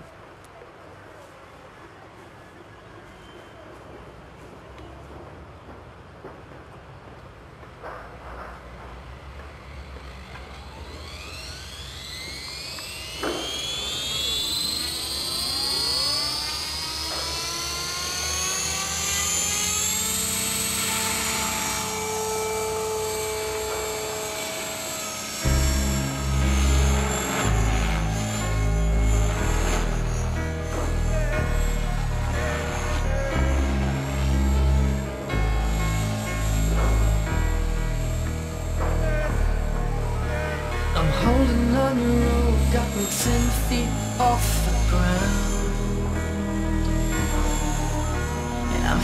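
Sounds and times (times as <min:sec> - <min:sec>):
model helicopter motor whine: 0:09.1 - 0:49.0.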